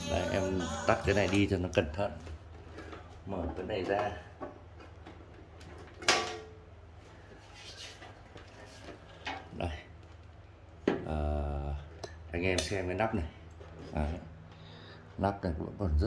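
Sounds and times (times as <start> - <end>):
metallic clunk of cover: 5.9 - 6.6.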